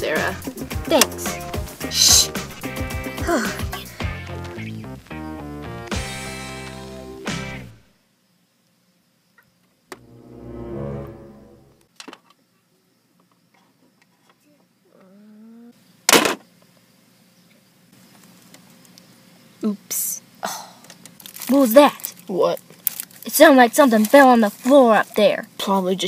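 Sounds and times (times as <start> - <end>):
music: 0.0 - 7.9, 10.0 - 11.9
short musical swell: 10.0 - 11.9.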